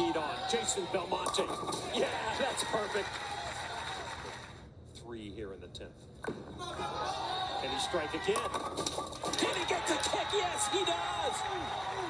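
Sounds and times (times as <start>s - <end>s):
crowd cheering and clapping: 1.9s - 4.6s, 6.7s - 8.4s, 9.3s - 12.0s.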